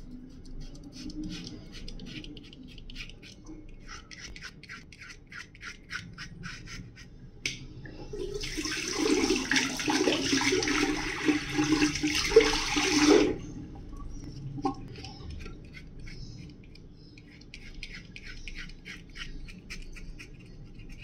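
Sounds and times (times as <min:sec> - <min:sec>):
razor scraping stubble: 0:15.5 - 0:21.0.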